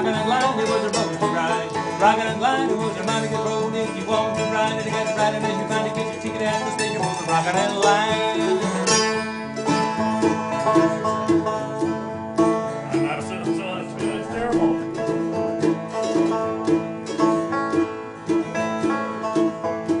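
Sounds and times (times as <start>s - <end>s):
banjo string picked: 0.0s - 20.0s
banjo strings ringing: 0.0s - 20.0s.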